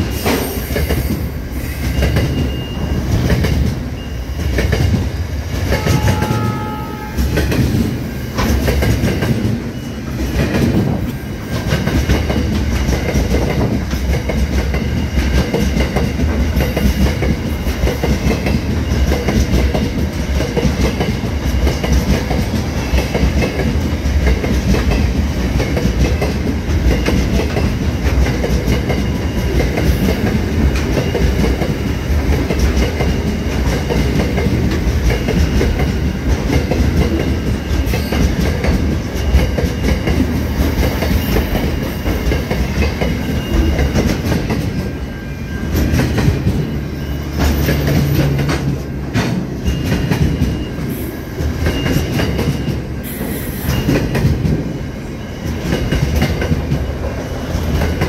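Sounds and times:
freight train passing: 0.0 - 58.0.

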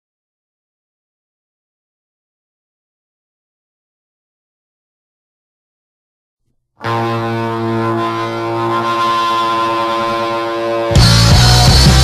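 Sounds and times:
distorted electric guitar chord: 6.8 - 12.0.

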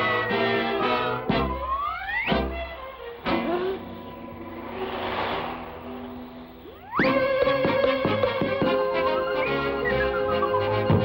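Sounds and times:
rising whistle-like glides: 1.5 - 7.4
hissing swell: 2.8 - 7.4
low booms: 3.8 - 7.4
sharp crash: 4.2 - 7.2
cartoon music: 6.8 - 11.0.

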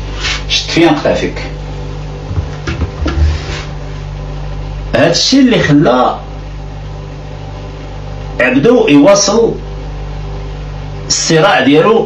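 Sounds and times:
low electrical hum: 0.0 - 12.0
short low thump: 2.3 - 3.5.

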